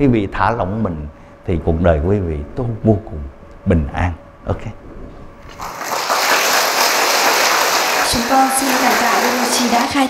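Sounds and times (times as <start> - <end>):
large audience applauding: 5.5 - 10.0.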